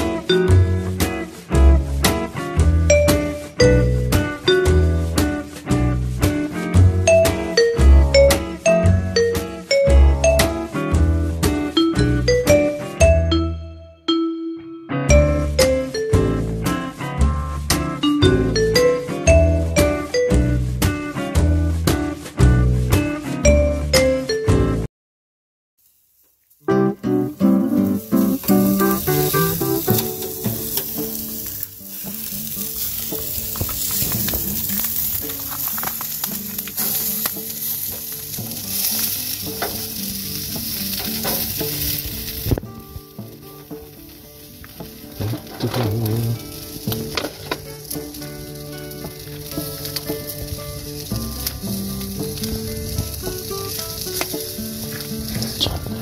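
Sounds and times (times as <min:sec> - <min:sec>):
chicken sizzling on charcoal grill: 0:00.0 - 0:13.0, 0:15.1 - 0:23.6, 0:25.8 - 0:56.0
background music: 0:00.0 - 0:24.9, 0:26.7 - 0:56.0.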